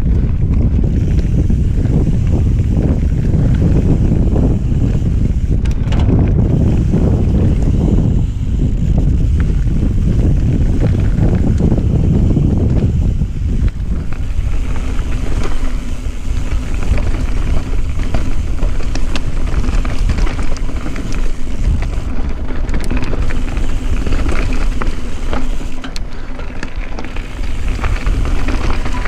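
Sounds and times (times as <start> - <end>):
bike clicking and rattling: 0.0 - 29.0
tyres rolling over gravel: 0.0 - 29.0
wind rushing over microphone: 0.0 - 29.0.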